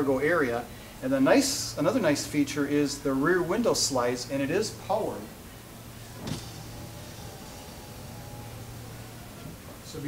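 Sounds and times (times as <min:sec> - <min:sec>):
window motor whine: 0:05.6 - 0:10.0.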